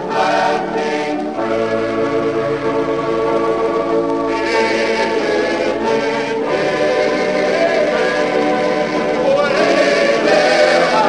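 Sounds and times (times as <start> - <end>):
choir singing gospel song: 0.0 - 11.0.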